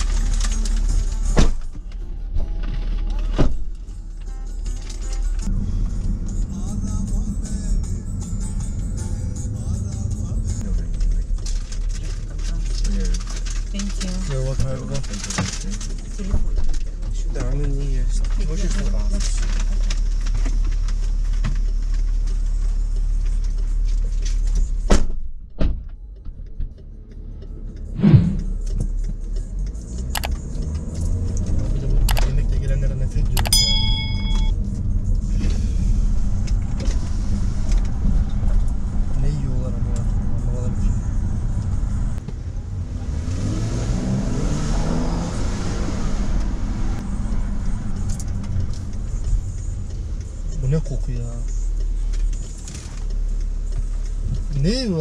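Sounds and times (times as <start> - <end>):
car engine and road rumble: 0.0 - 55.0
sharp thump: 27.9 - 28.6.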